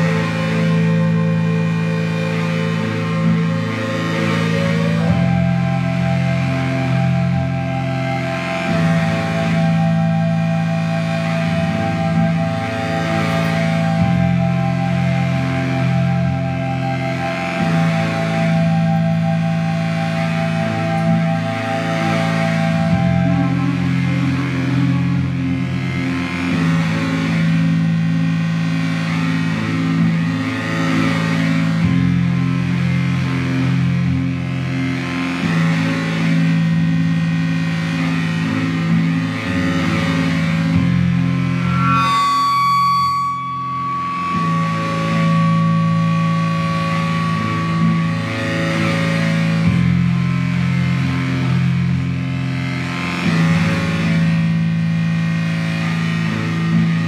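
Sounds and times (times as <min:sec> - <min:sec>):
low sustained drone tones: 0:00.0 - 0:57.0
pulsing note: 0:39.9 - 0:50.8
high held tone: 0:40.6 - 0:50.3.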